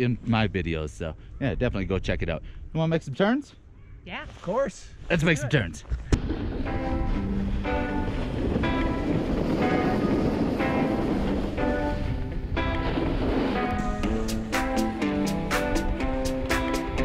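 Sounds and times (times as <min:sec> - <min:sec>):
wind noise on microphone: 0:05.9 - 0:17.0
background music: 0:06.5 - 0:17.0.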